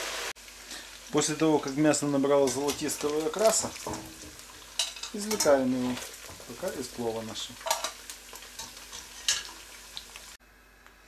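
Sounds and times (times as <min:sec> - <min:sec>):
meat sizzling in hot oil: 0:00.0 - 0:10.4.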